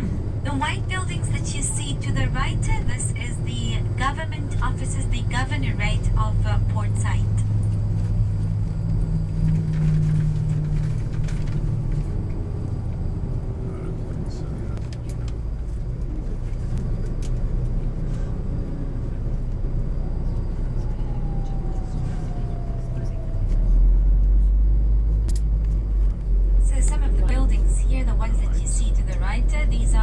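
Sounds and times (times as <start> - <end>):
bus engine rumble: 0.0 - 30.0
road noise: 0.0 - 30.0.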